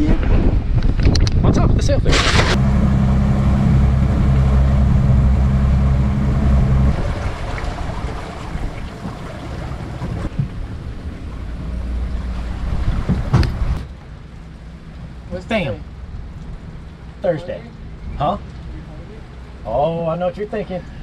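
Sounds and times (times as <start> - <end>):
rumbling wind-like noise: 0.0 - 17.2
outboard motor idling: 2.5 - 12.3.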